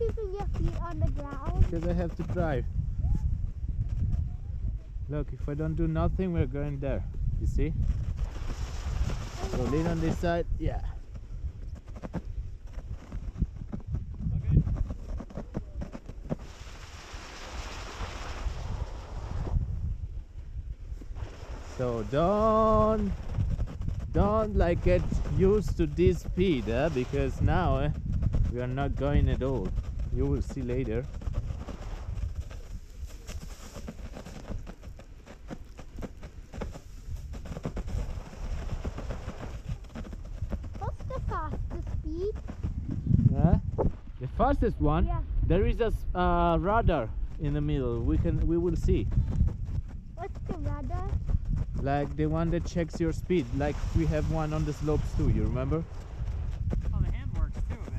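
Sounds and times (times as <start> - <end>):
wind rumbling on microphone: 0.0 - 57.9
sledge scraping on snow: 5.4 - 20.1, 20.8 - 44.0, 46.4 - 57.9.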